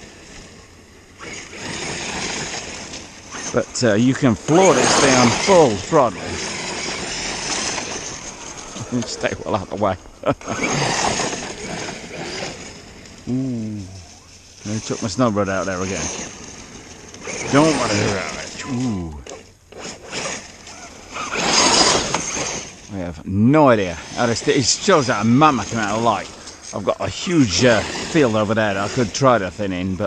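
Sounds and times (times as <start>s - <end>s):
electric rc car driving on grass: 0.0s - 30.0s.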